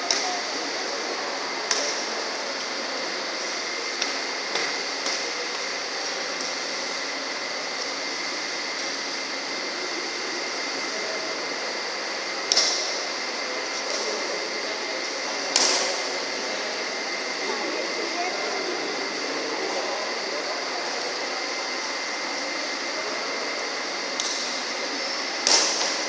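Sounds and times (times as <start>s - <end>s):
steady background hum: 0.0s - 26.0s
rackets hitting shuttlecock: 15.5s - 15.9s, 25.4s - 26.0s.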